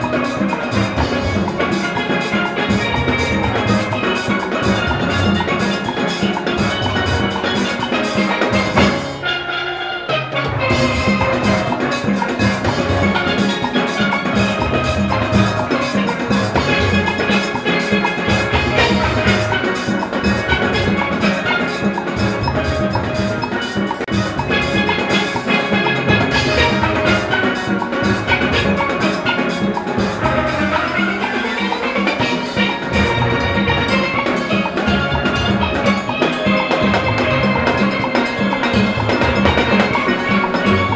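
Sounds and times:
rhythm section beat: 0.0 - 40.9
steel pans playing: 0.0 - 40.9.

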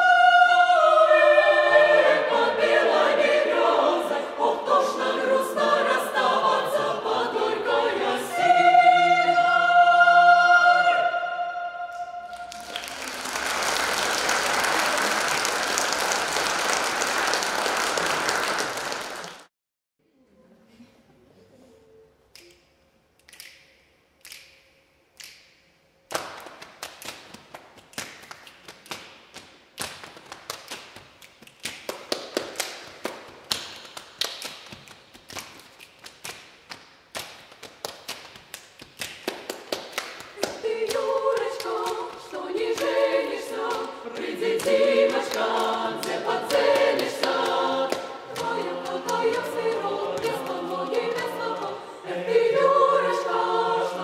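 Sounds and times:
choir singing in harmony: 0.0 - 19.2, 40.4 - 54.0
finger snaps: 22.3 - 30.0.

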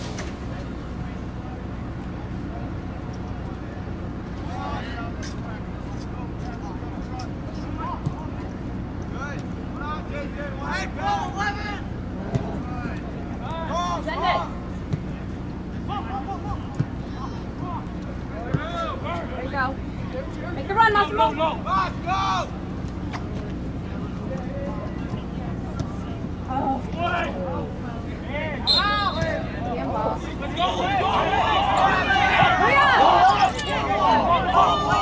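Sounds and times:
steady low hum: 0.0 - 35.0
distant shouts from players: 10.0 - 12.0, 28.3 - 35.0.

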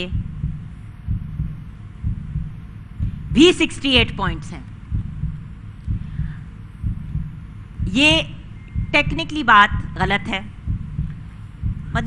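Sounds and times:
low heartbeat thuds: 0.0 - 12.0.

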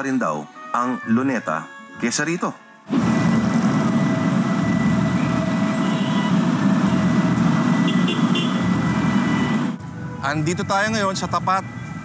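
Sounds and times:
heavy road traffic rumble: 2.8 - 12.0.

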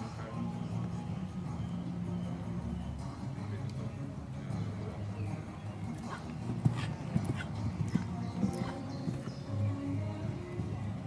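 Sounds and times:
background music: 0.0 - 11.0
hooves striking sand: 0.0 - 11.0.

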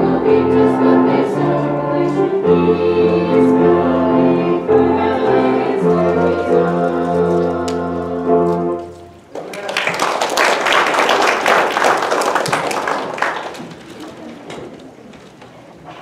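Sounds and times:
congregation applauding: 9.3 - 14.4.

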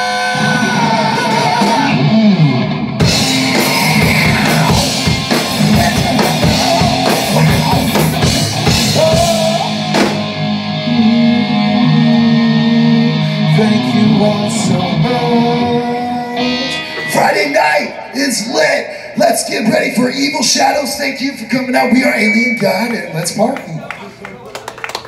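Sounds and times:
rock band playing loudly: 0.0 - 18.5.

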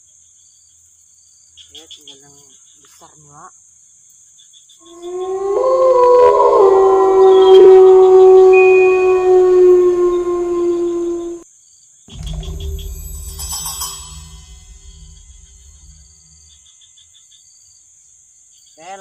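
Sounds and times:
loud layered droning tone: 8.5 - 11.4, 12.1 - 16.6
music with drums and cymbals: 12.1 - 16.5.

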